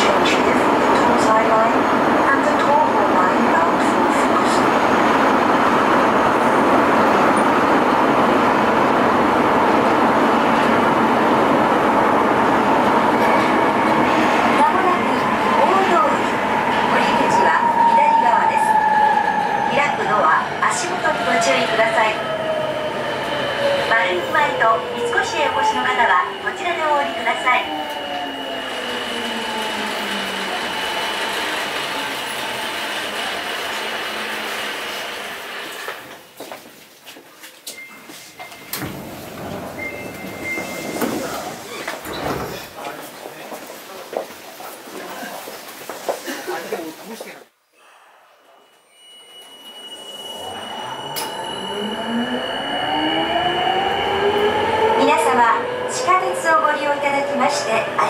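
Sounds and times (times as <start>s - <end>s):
train rolling noise: 0.0s - 47.4s
steady high tone: 47.8s - 54.8s.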